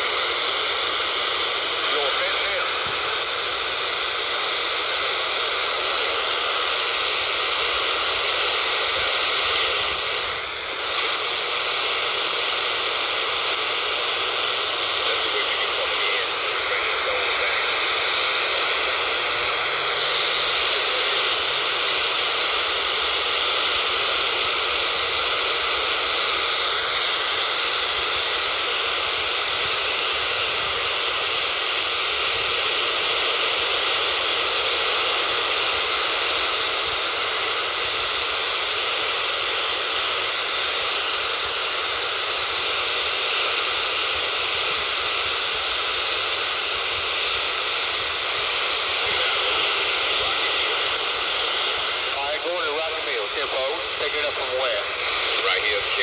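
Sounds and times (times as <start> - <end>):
radio static hiss: 0.0 - 56.0.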